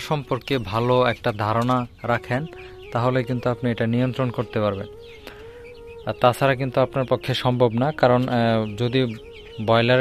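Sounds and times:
man speaking: 0.0 - 4.9, 6.1 - 10.0
chickens clucking: 0.0 - 10.0.

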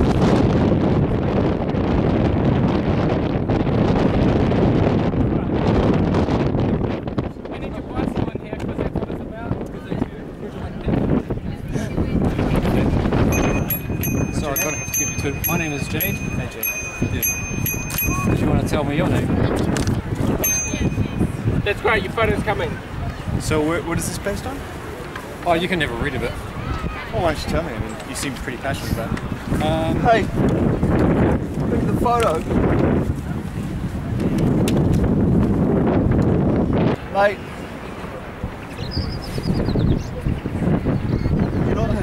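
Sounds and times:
wind buffeting microphone: 0.0 - 42.0
steady high-pitched tone: 13.3 - 18.5, 20.4 - 21.4.

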